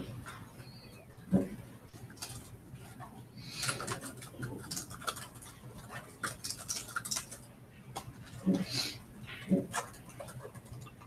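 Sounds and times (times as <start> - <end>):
laptop keyboard typing: 0.0 - 8.7, 9.4 - 11.0.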